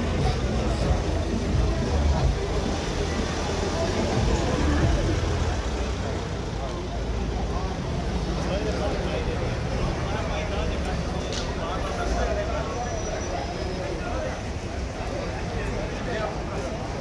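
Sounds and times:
crowd talking: 0:00.0 - 0:17.0
road traffic passing: 0:00.0 - 0:17.0.

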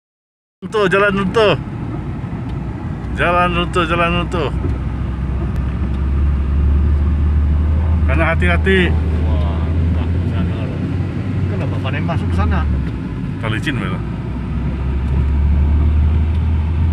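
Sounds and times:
car engine and tyre noise: 0:00.6 - 0:16.9
voices speaking: 0:07.9 - 0:12.8.

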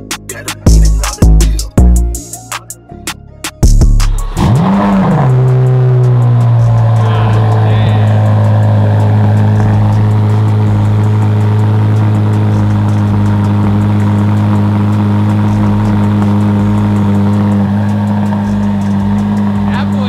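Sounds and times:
car engine idling: 0:00.0 - 0:02.7, 0:03.6 - 0:20.0.

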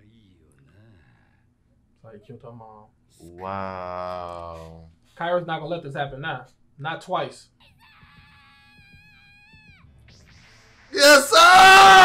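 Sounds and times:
girl crying out: 0:07.6 - 0:09.8, 0:11.0 - 0:12.0.

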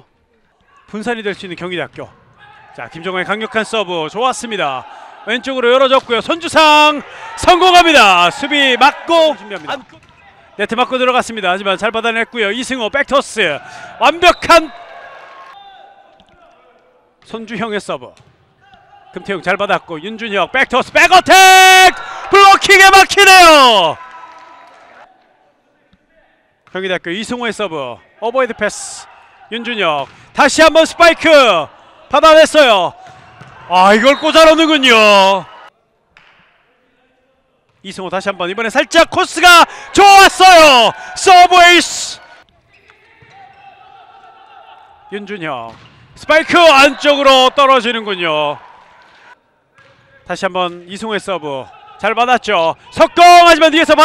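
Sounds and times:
volleyball contact: 0:08.3 - 0:10.9, 0:29.0 - 0:32.2, 0:32.9 - 0:34.7, 0:36.1 - 0:36.6, 0:42.2 - 0:51.1.

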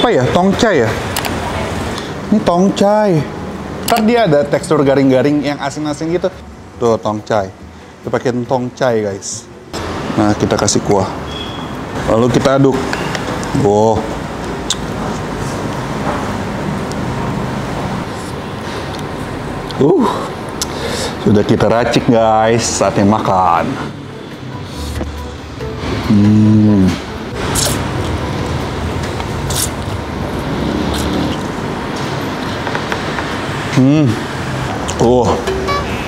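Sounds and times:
road traffic noise: 0:00.0 - 0:36.0
slurping noodles: 0:30.6 - 0:31.5.

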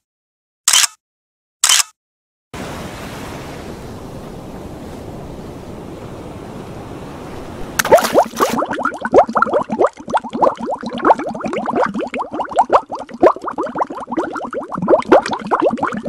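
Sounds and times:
underwater bubbling: 0:07.4 - 0:16.0
water splash: 0:07.4 - 0:16.0.

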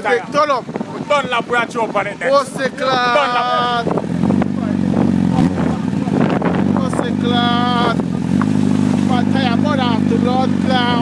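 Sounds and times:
motorcycle engine at steady revs: 0:02.5 - 0:11.0.

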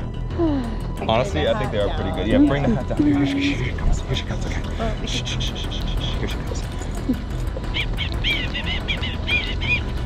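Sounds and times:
steady low rumble: 0:00.0 - 0:10.0
bird chirping: 0:07.6 - 0:10.0.

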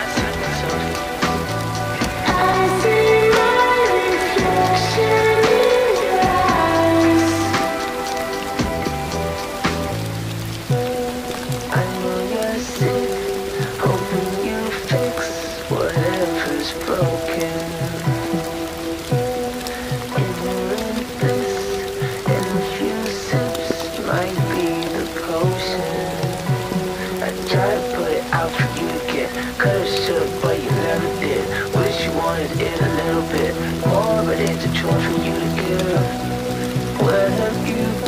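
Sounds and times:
rain falling: 0:00.0 - 0:38.0
song with bass line: 0:00.0 - 0:38.0.

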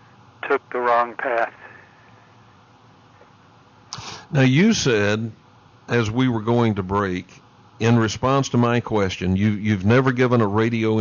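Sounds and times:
faint broadcast hiss: 0:00.0 - 0:11.0.

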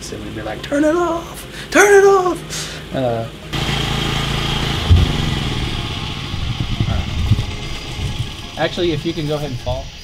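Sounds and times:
generator engine running: 0:00.2 - 0:09.6
thump: 0:04.8 - 0:05.9.

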